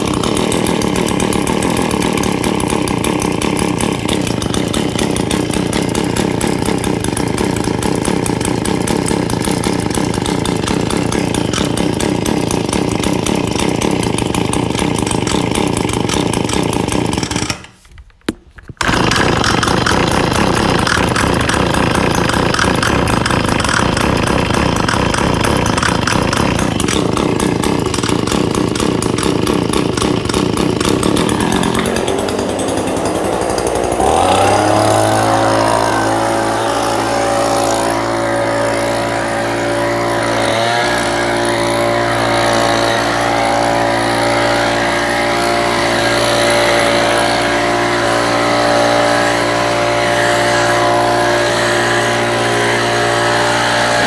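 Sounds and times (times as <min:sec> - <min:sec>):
leaf blower engine running: 0:00.0 - 0:54.0.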